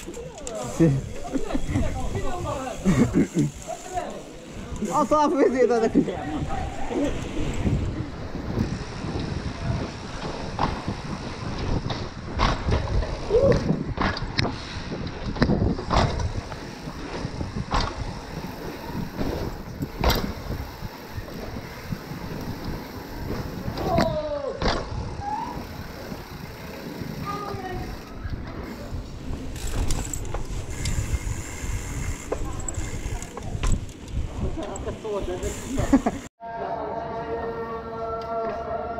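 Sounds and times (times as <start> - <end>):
bike clacking and rattling over bumps: 0.0 - 36.3
bike tyre rumble: 0.0 - 36.3
wind rush: 5.9 - 36.3.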